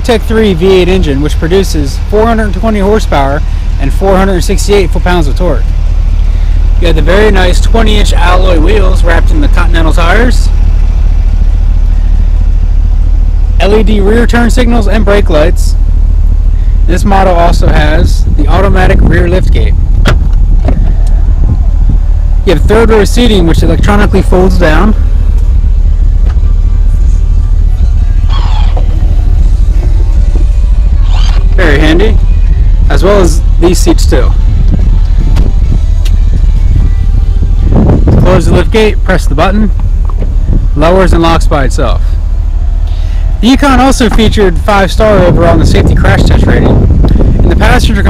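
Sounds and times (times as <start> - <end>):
car engine idling: 0.0 - 48.0
loud steady low rumble: 0.0 - 48.0.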